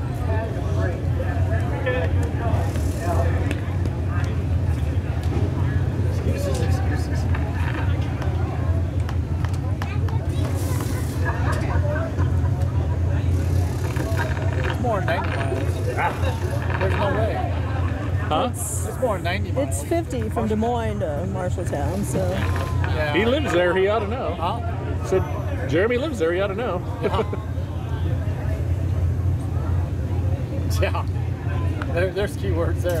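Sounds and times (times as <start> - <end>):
spectators chattering: 0.0 - 33.0.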